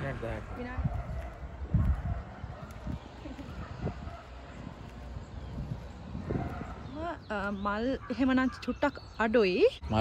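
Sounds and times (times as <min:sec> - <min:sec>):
footsteps on paving stones: 0:00.0 - 0:08.8.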